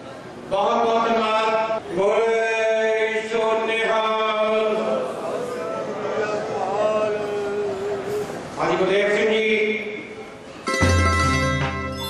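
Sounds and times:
man chanting into microphone: 0.5 - 10.0.

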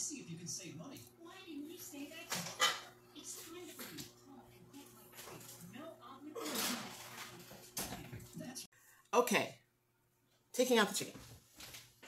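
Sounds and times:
faint tv voices: 0.0 - 9.0.

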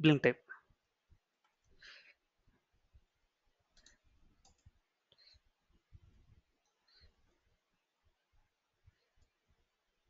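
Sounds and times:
computer keyboard typing: 3.7 - 4.7.

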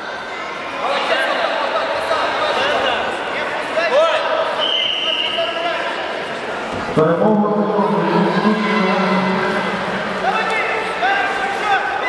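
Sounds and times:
voices shouting: 7.6 - 12.0.

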